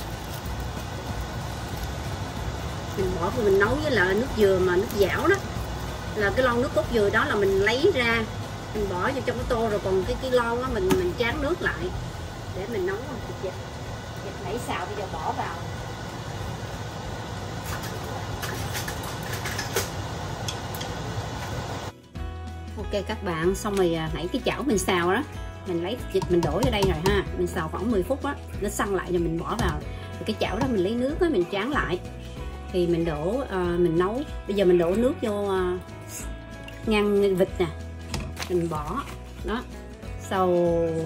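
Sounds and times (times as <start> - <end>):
low mechanical hum: 0.0 - 21.9.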